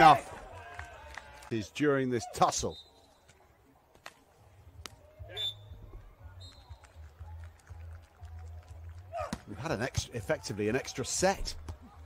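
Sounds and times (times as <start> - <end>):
referee's whistle blasts: 5.3 - 5.8.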